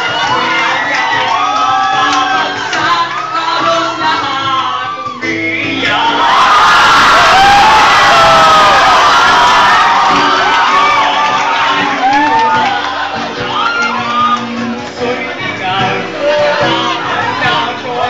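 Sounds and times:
person singing: 0.0s - 6.6s, 10.7s - 18.0s
acoustic guitar: 0.0s - 18.0s
audience cheering and shouting: 0.0s - 18.0s.

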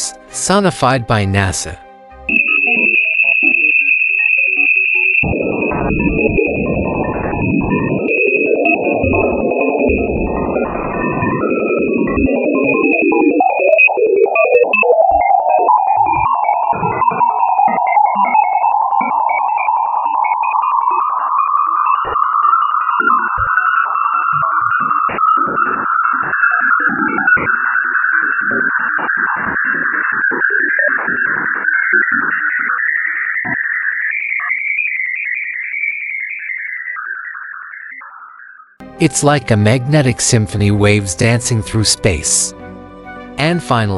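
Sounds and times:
eerie rising whistling band: 2.3s - 27.8s
steady high tone: 38.8s - 43.9s.

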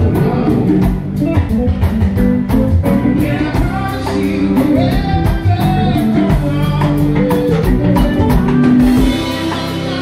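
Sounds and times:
bass guitar: 0.0s - 10.0s
guitar: 0.0s - 10.0s
steady drum beat: 0.0s - 10.0s.

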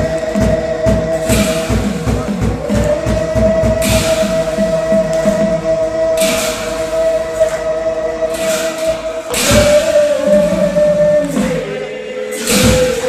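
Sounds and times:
hand cymbals clashing: 0.0s - 13.0s.

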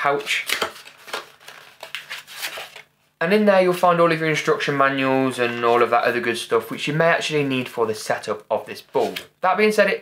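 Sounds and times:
paper and card crinkling: 0.0s - 2.9s.

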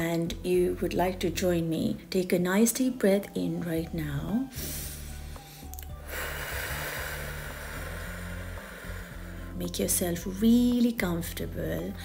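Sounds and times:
soft background music: 0.0s - 12.0s
person breathing deeply: 4.5s - 9.6s.

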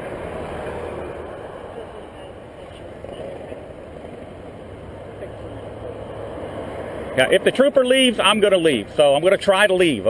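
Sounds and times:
vehicle idling: 0.0s - 10.0s
faint voices: 0.9s - 9.6s.

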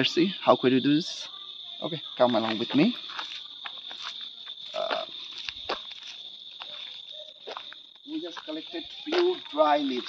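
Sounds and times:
crickets chirring: 0.0s - 10.0s
footsteps in dry undergrowth: 2.2s - 10.0s.

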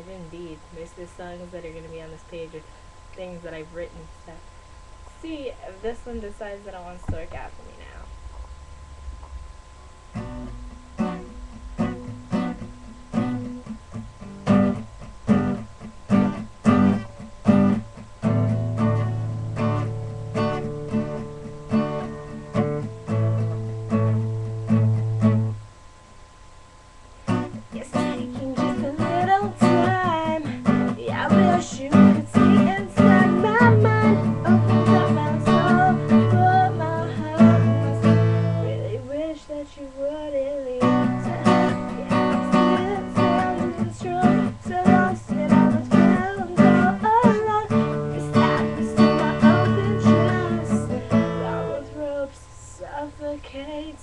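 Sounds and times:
woman singing: 0.0s - 2.6s, 27.5s - 54.0s
acoustic guitar strummed: 7.0s - 25.7s, 27.2s - 54.0s.

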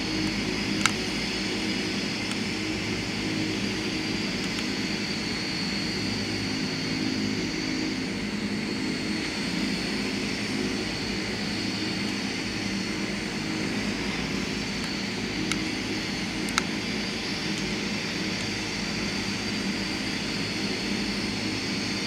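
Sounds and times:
turboprop engines droning: 0.0s - 22.0s.

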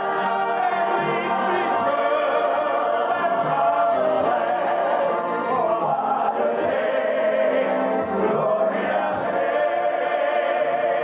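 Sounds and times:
congregation singing along: 0.0s - 11.0s
male quartet singing gospel: 0.0s - 11.0s.

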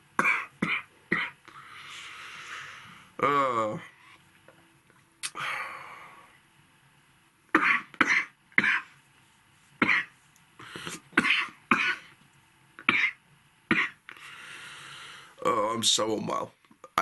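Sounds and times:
man coughing: 10.8s - 12.1s.

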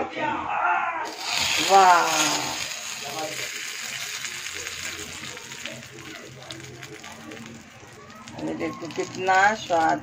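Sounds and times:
hot oil sizzling and crackling: 1.0s - 10.0s.

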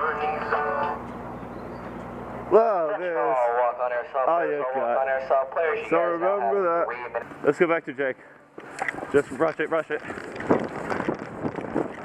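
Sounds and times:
music: 0.0s - 1.0s
outdoor background noise: 0.0s - 12.0s.

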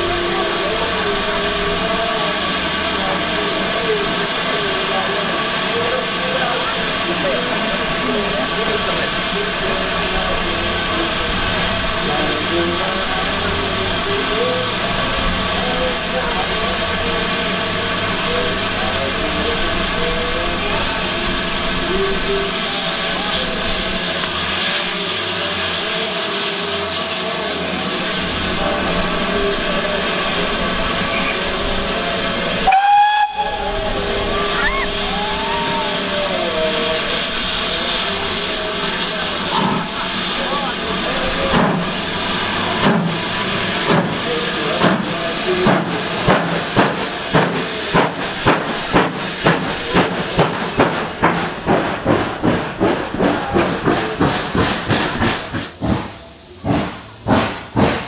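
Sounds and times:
steam hissing: 0.0s - 58.0s
steam locomotive whistle: 32.6s - 36.6s.

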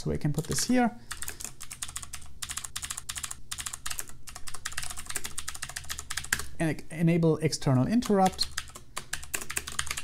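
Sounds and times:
typing on computer keyboard: 0.4s - 6.5s, 8.0s - 10.0s.

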